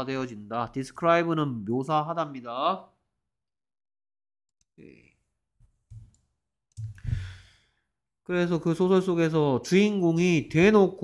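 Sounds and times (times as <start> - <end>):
man sighing: 6.9 - 7.6.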